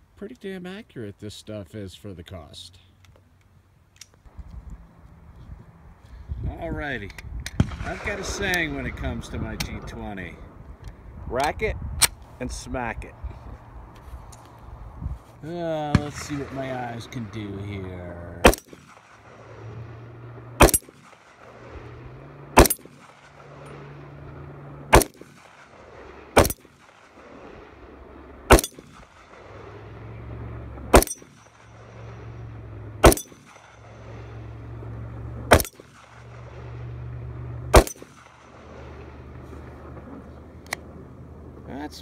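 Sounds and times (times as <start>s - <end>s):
pistol shots: 7.5s - 9.0s, 15.8s - 24.1s, 24.9s - 27.6s, 28.5s - 30.1s, 30.9s - 32.3s, 33.0s - 34.2s, 35.5s - 36.8s, 37.7s - 39.0s.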